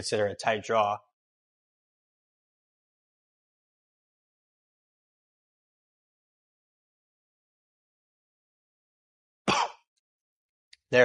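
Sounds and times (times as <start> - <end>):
man speaking: 0.0 - 1.0.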